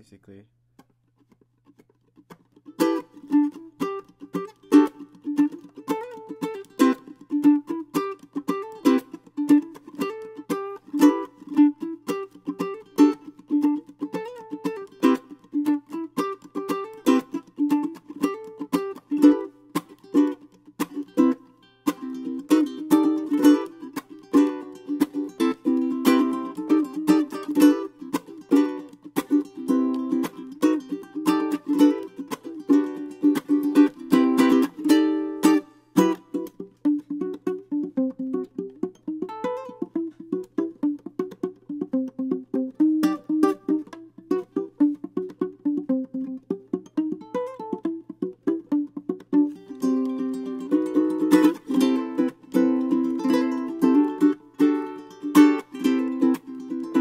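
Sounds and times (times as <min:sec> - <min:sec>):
ukulele playing: 0:00.8 - 0:57.0.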